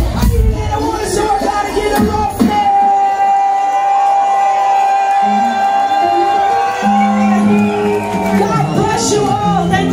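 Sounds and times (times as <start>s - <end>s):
crowd noise: 0.0s - 9.9s.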